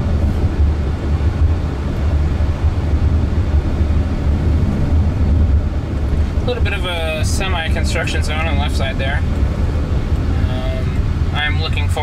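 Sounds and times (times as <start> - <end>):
low road noise rumble: 0.0 - 12.0.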